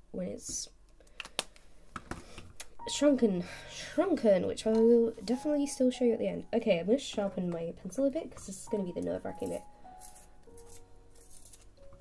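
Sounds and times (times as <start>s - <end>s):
art supplies clicking and tapping: 0.9s - 2.7s.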